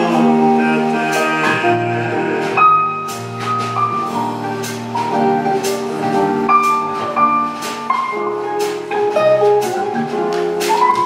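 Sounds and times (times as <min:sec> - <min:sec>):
live acoustic band: 0:00.0 - 0:11.0.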